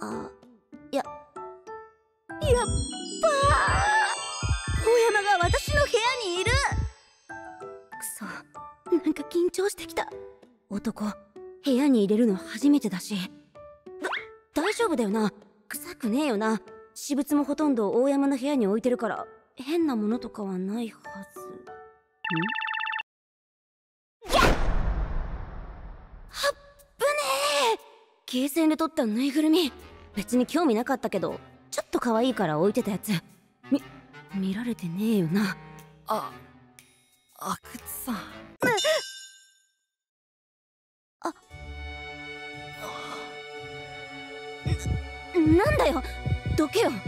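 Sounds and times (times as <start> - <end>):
high voiced exclamation: 2.4 - 6.7
whoosh and hit effect: 24.3 - 26.4
low paired thumps: 44.7 - 47.0.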